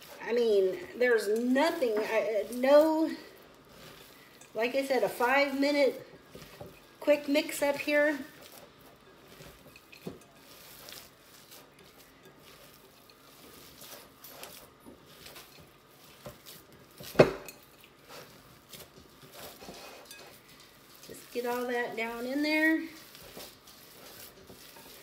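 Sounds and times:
hands squishing meat: 8.2 - 25.0.

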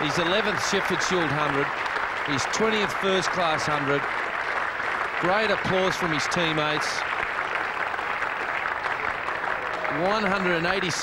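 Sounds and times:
crowd applause: 0.0 - 11.0.

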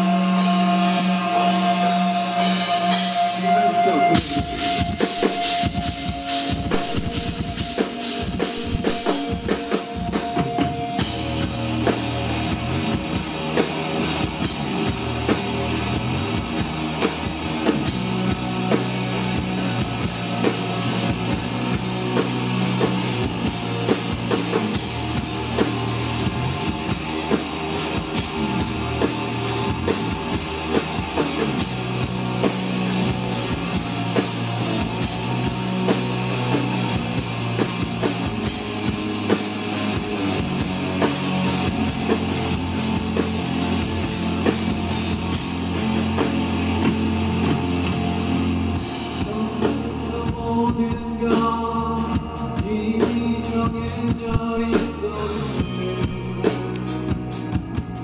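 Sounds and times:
electric guitar: 0.0 - 58.0
steady drum beat: 0.0 - 58.0.

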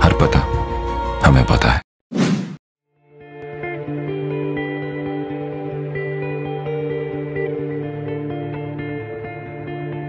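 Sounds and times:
whoosh sound effect: 2.1 - 2.6.

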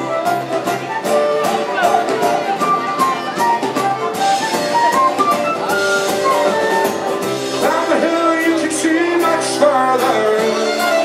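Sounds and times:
folk band playing: 0.0 - 11.0.

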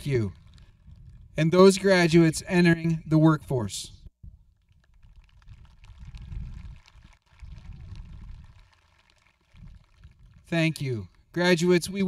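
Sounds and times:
wind buffeting microphone: 0.0 - 8.8, 9.4 - 11.3.

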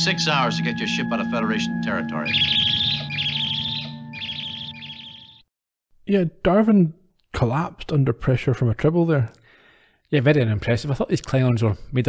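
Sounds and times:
high fast warbling trills: 0.0 - 5.4.

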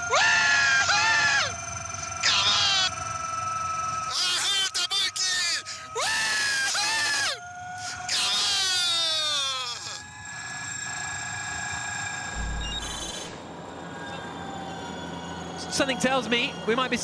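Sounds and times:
road noise: 12.3 - 13.7
low bump: 12.4 - 13.4.

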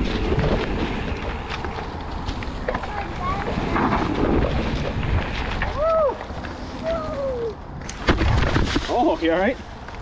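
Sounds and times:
wind buffeting microphone: 0.0 - 8.8
bike tyres rolling on dirt trail: 0.0 - 10.0.

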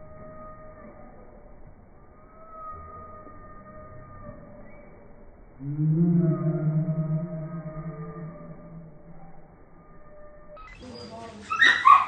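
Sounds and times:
dog barking high: 11.6 - 12.0.

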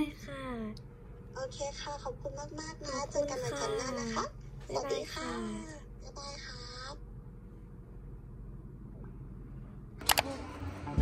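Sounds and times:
low room tone hum: 0.0 - 11.0.

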